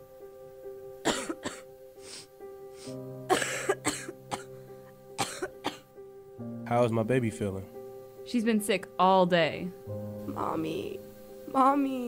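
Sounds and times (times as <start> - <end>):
soft background music: 0.0 - 12.0
person coughing: 1.1 - 1.6, 3.3 - 4.5, 5.2 - 5.8.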